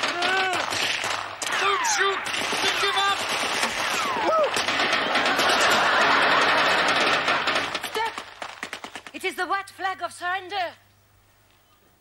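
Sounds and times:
studio audience laughter: 4.9s - 7.8s.

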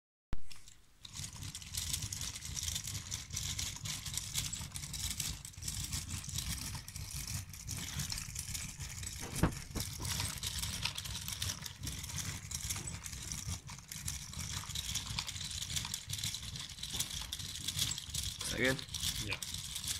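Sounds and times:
plastic gears clattering: 0.4s - 19.9s
sharp plastic knock: 9.2s - 10.0s.

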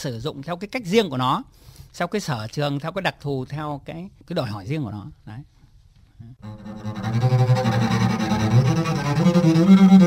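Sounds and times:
double bass bowed tremolo: 6.4s - 10.0s.

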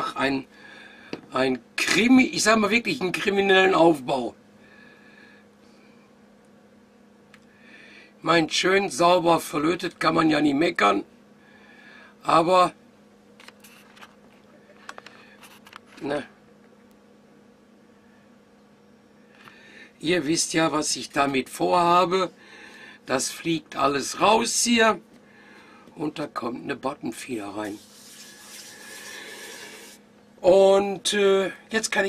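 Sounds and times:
steady low hum: 0.0s - 32.0s
hands rubbing together: 27.6s - 30.0s.

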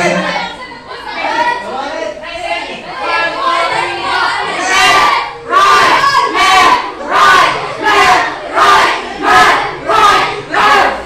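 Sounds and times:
group shouting in unison: 3.0s - 11.0s.

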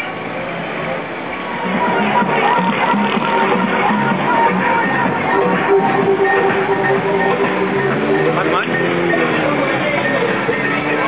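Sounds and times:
loud music over loudspeaker: 1.4s - 11.0s.

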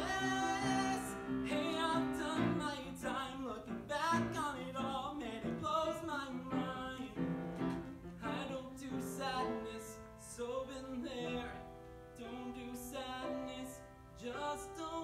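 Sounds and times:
man singing with vibrato: 0.0s - 15.0s
piano accompaniment: 0.0s - 15.0s.

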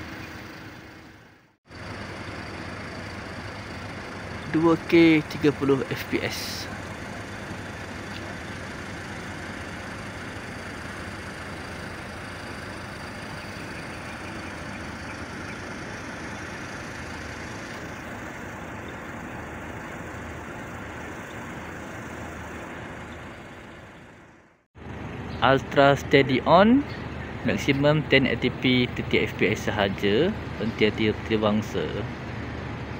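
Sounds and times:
vehicle engine hum: 0.0s - 32.9s.

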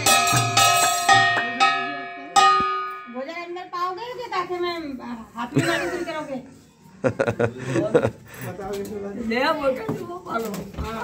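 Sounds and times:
brass hand cymbals clashing: 0.0s - 3.2s.

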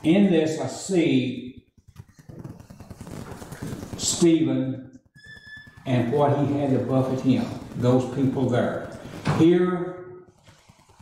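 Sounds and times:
handling noise crackling and clicking: 1.6s - 4.1s.

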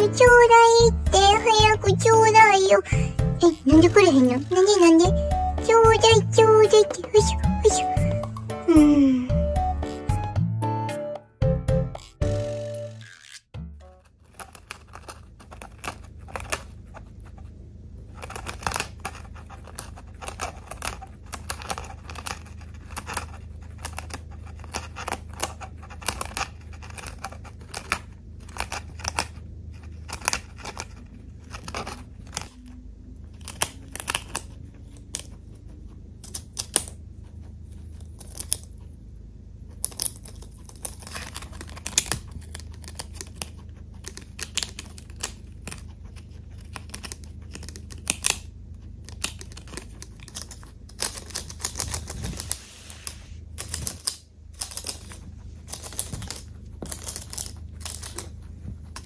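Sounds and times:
chinchilla chewing leaf crunches: 14.1s - 39.0s, 39.6s - 59.0s.

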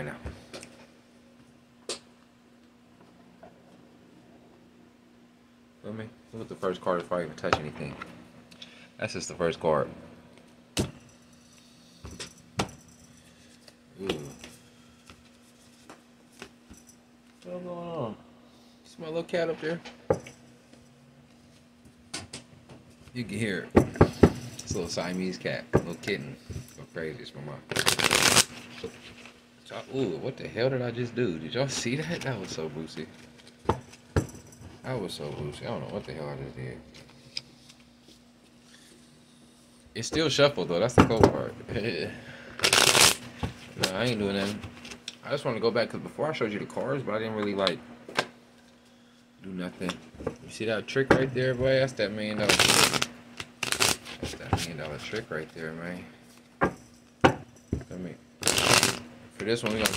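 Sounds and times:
faint steady hum: 0.0s - 59.9s
cards being shuffled: 27.7s - 29.4s, 42.6s - 45.0s, 52.4s - 54.4s, 58.4s - 59.0s
cards snapping: 52.5s - 54.0s.

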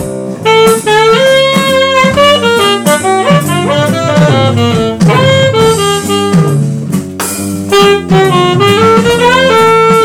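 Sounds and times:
drums: 0.0s - 10.0s
jazz saxophone: 0.0s - 10.0s
walking electric bass: 0.0s - 10.0s.

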